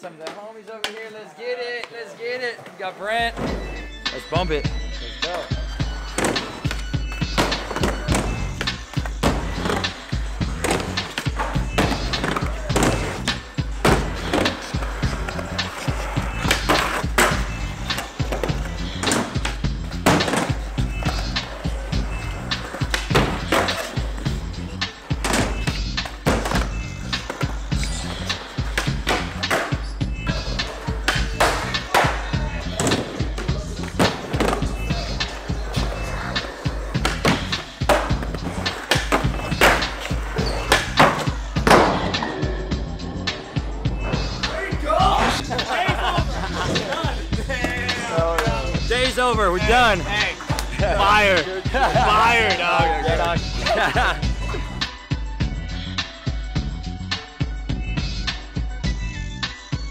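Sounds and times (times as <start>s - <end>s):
skateboards rolling on concrete: 0.2s - 55.1s
music: 2.9s - 59.9s
skateboard clacks and slaps: 6.1s - 21.7s, 22.4s - 24.4s, 25.1s - 29.8s, 30.4s - 42.3s.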